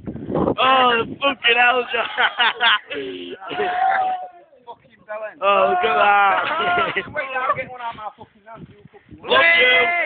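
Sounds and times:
loud wordless cry: 0.6s - 4.6s, 5.4s - 7.1s.

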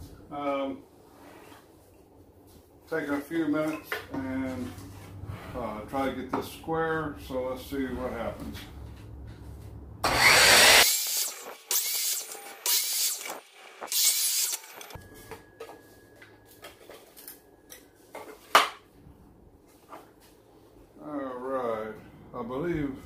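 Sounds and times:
miter saw cutting board: 10.0s - 15.0s.

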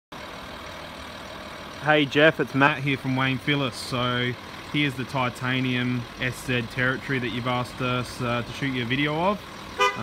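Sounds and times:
car engine idling: 0.1s - 10.0s
man talking: 1.8s - 10.0s.

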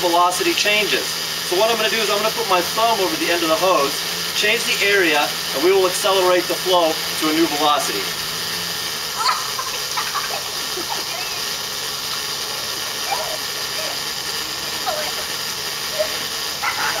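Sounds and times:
hose water spraying hiss: 0.0s - 17.0s
children shouting and squealing: 9.1s - 17.0s.

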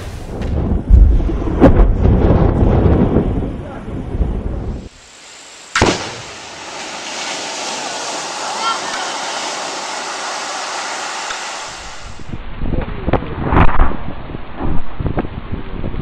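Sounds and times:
water spray hissing and falling: 4.8s - 12.4s
underwater charge sharp crack: 5.5s - 12.4s
underwater blast rumble: 5.6s - 12.4s.

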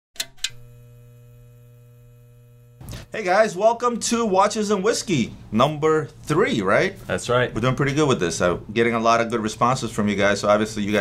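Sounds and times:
neon tube electrical buzz: 0.2s - 3.7s
neon sign electric crackles: 0.4s - 3.2s.

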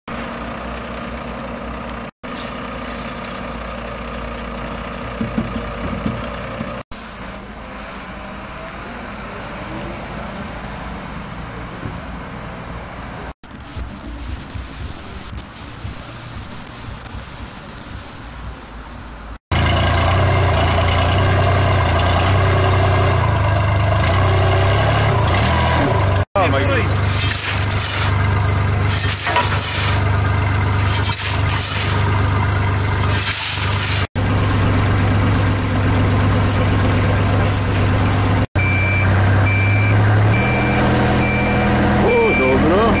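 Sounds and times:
heavy machinery diesel engines: 0.1s - 13.4s, 18.5s - 43.0s
gravel clattering: 26.6s - 38.4s
shovel scraping: 26.9s - 34.7s
reversing beeper: 38.6s - 43.0s.

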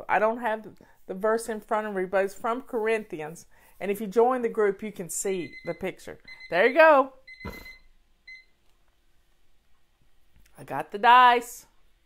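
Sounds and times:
faint high electronic beep: 7.3s - 8.5s.

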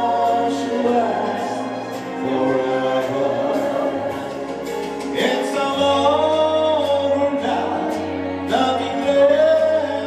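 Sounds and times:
backing track music: 0.0s - 10.0s
man singing into a microphone: 0.0s - 10.0s.

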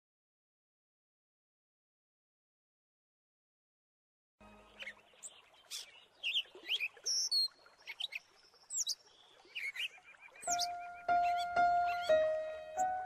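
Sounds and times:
bird chirps and whistles: 9.7s - 12.2s.

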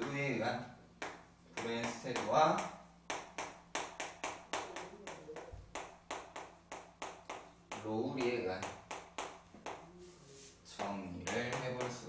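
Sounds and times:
chalk tapping and scraping on blackboard: 1.0s - 12.0s.

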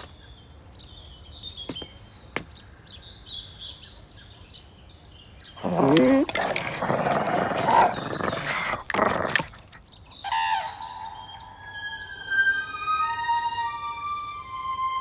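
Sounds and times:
dog barking roughly: 5.6s - 9.6s
dog whining: 5.6s - 9.8s.

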